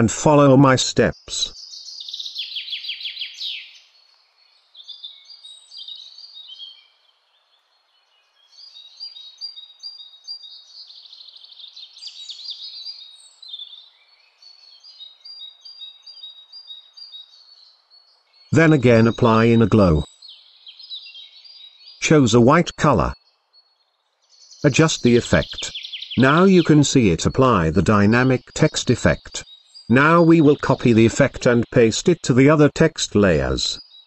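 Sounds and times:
small birds chirping: 0.0s - 34.0s.

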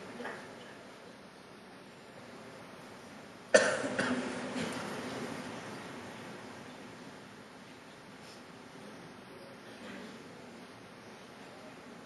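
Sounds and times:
cough in a reverberant hall: 3.5s - 5.0s.

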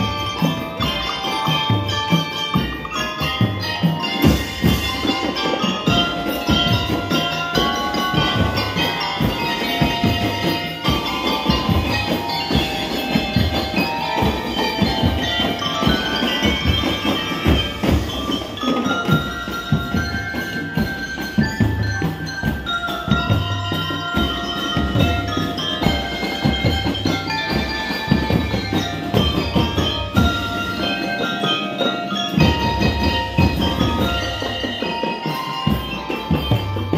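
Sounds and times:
mallet keyboard melody: 0.0s - 36.9s.

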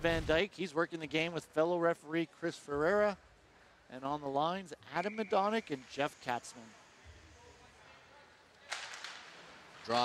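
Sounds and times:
hockey sticks cracking on puck: 8.7s - 9.6s.

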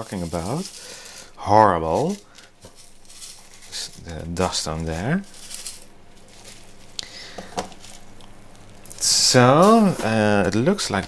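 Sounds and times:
pumice grains rattling: 0.0s - 11.0s.

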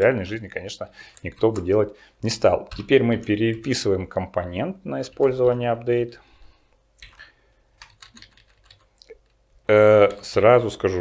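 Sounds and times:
computer keyboard key clicks: 7.8s - 8.9s.

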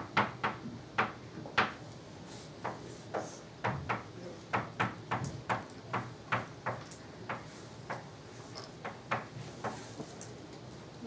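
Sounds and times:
chalk clacking on blackboard: 2.6s - 8.1s, 8.8s - 10.1s.

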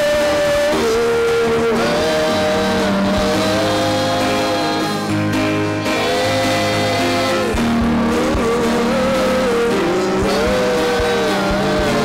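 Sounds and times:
low bass notes: 0.0s - 12.0s
worship band music: 0.0s - 12.0s.

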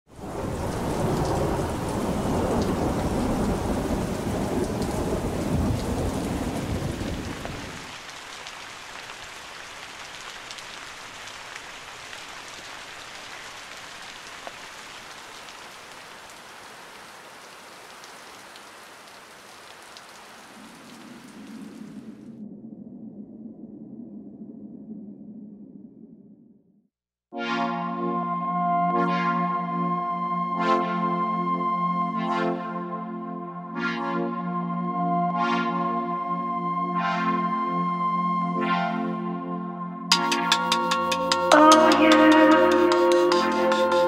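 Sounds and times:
heavy rain: 0.1s - 22.4s, 40.1s - 44.0s
rolling thunder: 0.2s - 7.9s.

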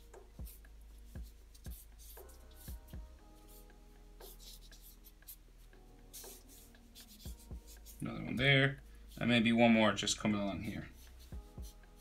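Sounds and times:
marker scratching on paper: 0.0s - 8.4s, 10.5s - 12.0s.

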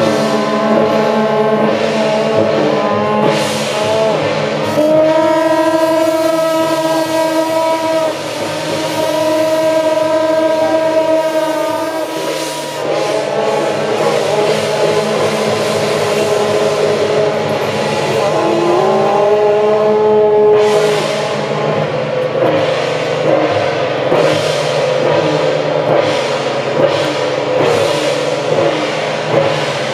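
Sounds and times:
cymbal crashes: 0.0s - 29.9s
horns holding long notes: 0.0s - 29.9s.

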